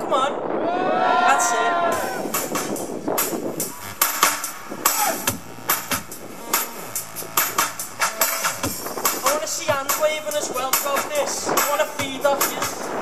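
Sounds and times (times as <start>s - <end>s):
bass line: 0.6s - 13.0s
sharp drum beat: 1.9s - 12.9s.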